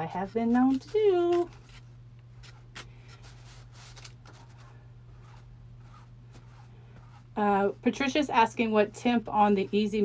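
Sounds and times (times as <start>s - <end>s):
foam brush scratching on paper: 3.2s - 8.2s.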